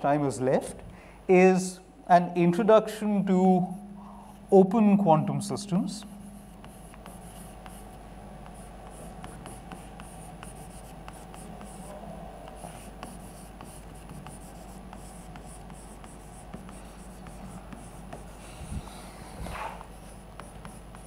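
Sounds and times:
chalk tapping on blackboard: 0:06.0 - 0:18.4, 0:19.6 - 0:21.0
chalk scratching on blackboard: 0:06.0 - 0:21.0.

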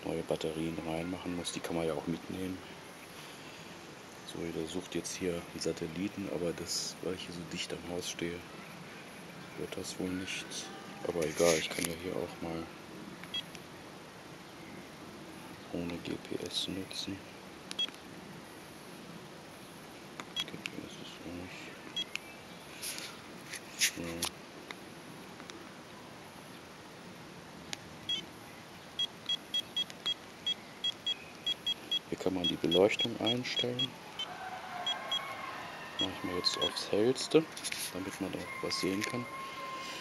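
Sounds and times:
low background hiss: 0:00.0 - 0:40.0.

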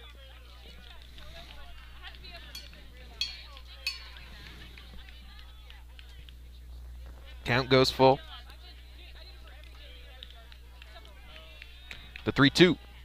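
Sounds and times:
distant voices of players and spectators: 0:00.0 - 0:13.0
steady low hum: 0:00.0 - 0:13.0.

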